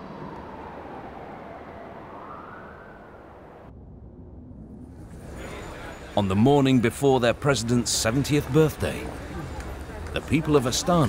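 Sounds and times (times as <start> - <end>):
siren wailing: 0.0 - 3.7
traffic rumble: 0.0 - 11.0.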